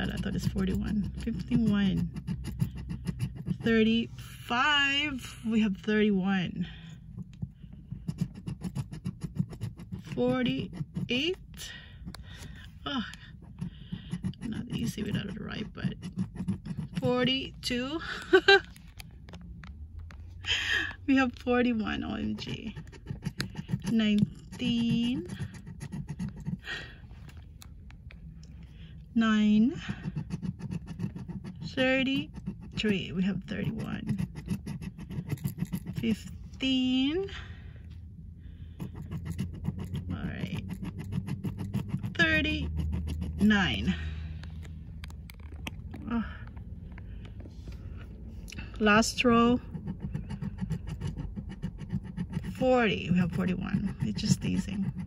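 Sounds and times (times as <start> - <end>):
metal tool scraping lottery ticket: 0.0 - 4.7, 7.9 - 17.8, 21.6 - 26.8, 29.7 - 36.8, 38.7 - 44.0, 49.0 - 55.0.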